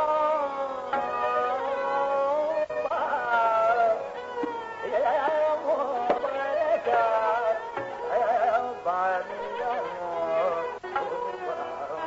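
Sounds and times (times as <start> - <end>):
classical singing voice: 0.0 - 12.0.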